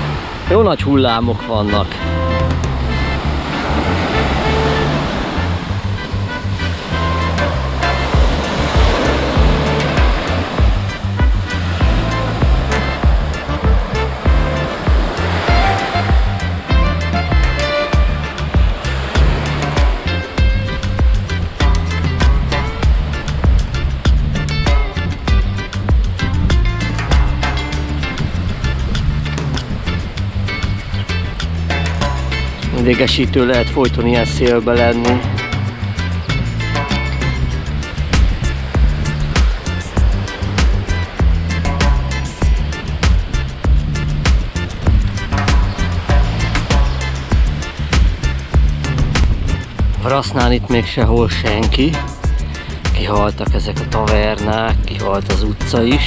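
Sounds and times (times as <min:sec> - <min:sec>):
sea waves breaking on sand: 0:00.0 - 0:02.0, 0:02.7 - 0:25.4
background music with steady beat: 0:01.5 - 0:56.0.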